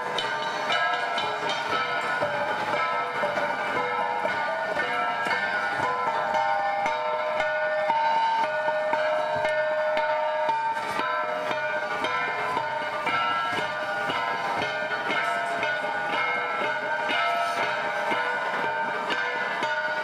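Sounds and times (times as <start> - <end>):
bronze gongs struck in steady beat: 0.0 - 20.0.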